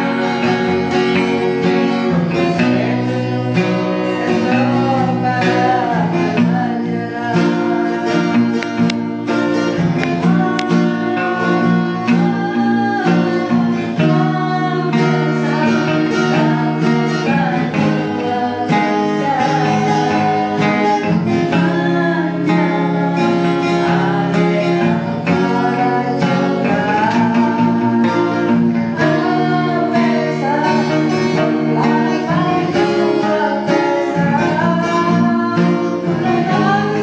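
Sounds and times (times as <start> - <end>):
person singing: 0.0 - 37.0
strummed guitar chords: 0.0 - 37.0.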